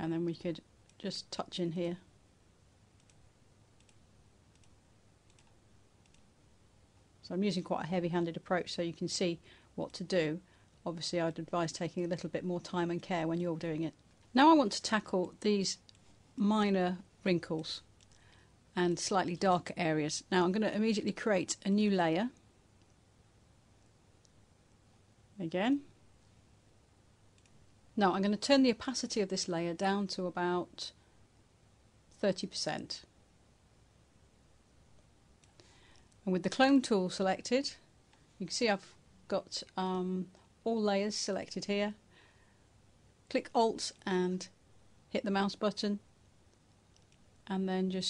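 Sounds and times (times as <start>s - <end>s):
computer mouse clicks: 3.0s - 3.2s, 3.8s - 6.3s, 17.5s - 18.3s, 27.4s - 27.6s, 46.5s - 47.3s.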